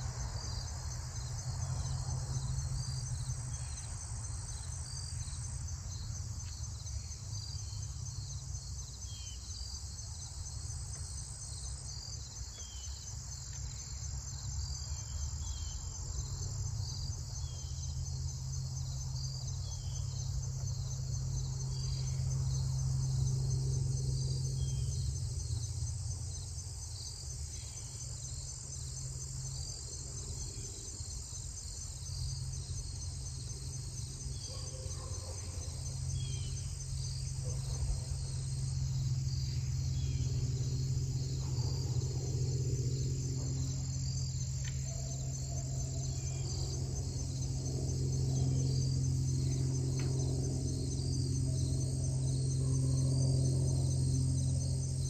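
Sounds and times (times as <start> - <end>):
insects trilling: 0.0 - 55.0.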